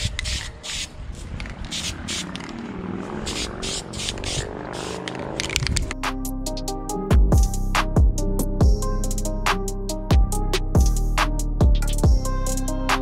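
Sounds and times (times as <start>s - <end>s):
spray paint can hissing: 0.0s - 5.2s.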